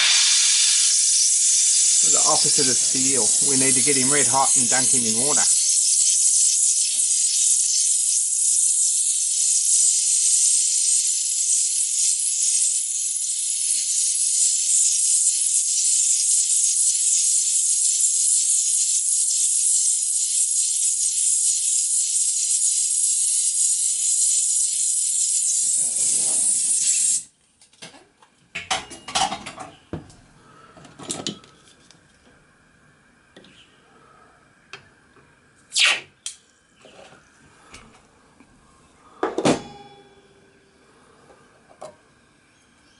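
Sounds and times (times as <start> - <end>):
gas torch flame hissing: 0.0 - 27.3, 35.7 - 36.3.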